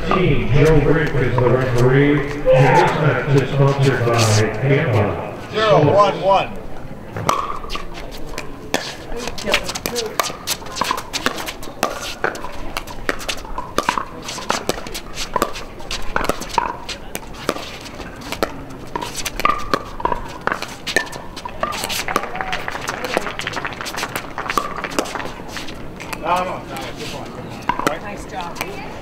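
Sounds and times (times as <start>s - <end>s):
voices talking: 0.0s - 19.3s, 20.6s - 29.0s
paddles hitting plastic ball: 8.4s - 26.4s, 27.6s - 28.8s.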